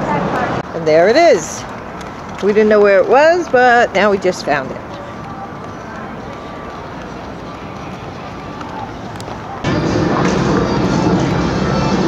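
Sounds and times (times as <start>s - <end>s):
city street background noise: 0.0s - 12.0s
faint distant voices: 2.6s - 9.9s.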